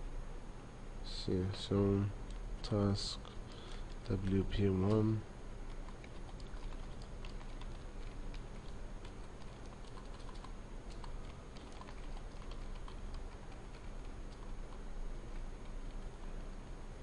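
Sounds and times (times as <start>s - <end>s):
steady low hum: 0.0s - 17.0s
keyboard typing: 5.7s - 16.1s.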